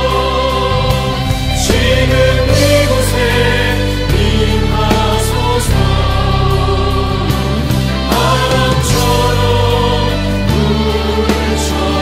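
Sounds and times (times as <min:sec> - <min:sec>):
person singing worship song: 0:00.0 - 0:12.0.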